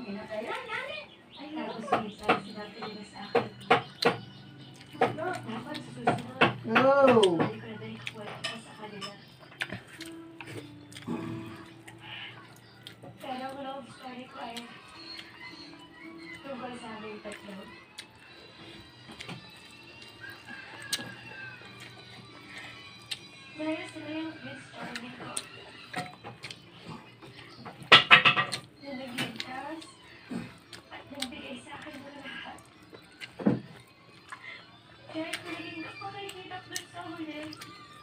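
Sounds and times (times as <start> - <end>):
music: 0.0 - 38.0.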